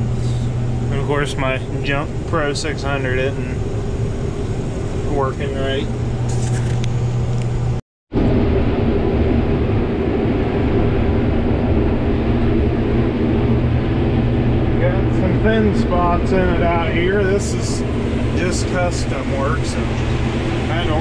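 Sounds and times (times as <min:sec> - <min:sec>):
combine harvester engine hum: 0:00.0 - 0:21.0.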